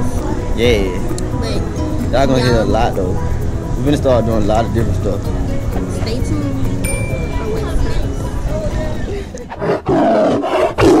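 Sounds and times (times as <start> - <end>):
loud big cat roar: 9.6 - 11.0.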